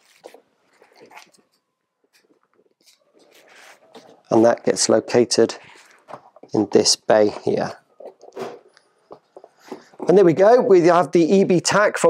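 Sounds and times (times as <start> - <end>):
plastic scraping and rustling: 0.0 - 4.7, 5.6 - 10.6.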